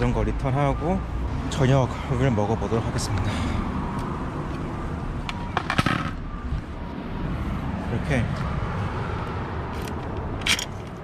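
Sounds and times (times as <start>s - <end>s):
bicycle metallic clicks and rattles: 9.7s - 11.0s.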